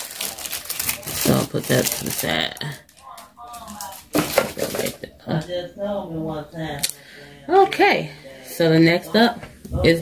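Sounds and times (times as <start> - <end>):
faint voice: 2.6 - 5.2.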